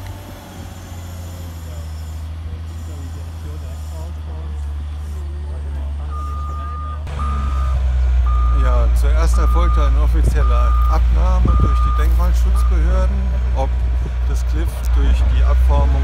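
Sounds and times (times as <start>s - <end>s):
diesel loader engine running: 0.0s - 16.0s
reversing alarm beeps: 6.1s - 8.6s, 10.4s - 10.9s, 11.5s - 12.8s.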